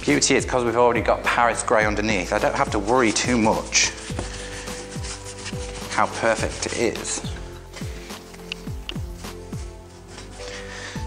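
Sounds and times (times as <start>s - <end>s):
background music with low beat: 0.0s - 11.0s
paintbrush scrubbing on wood: 2.1s - 11.0s.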